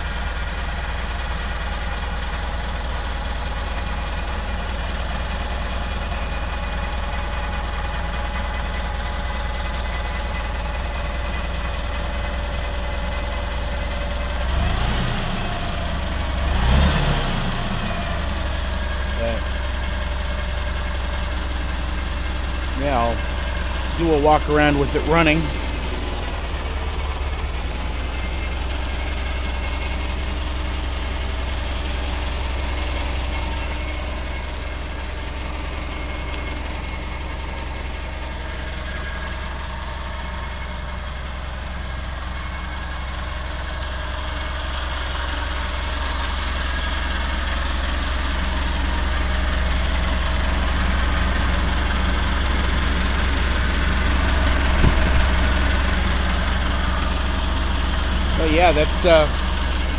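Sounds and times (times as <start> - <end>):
forklift engine idling: 0.0 - 59.9.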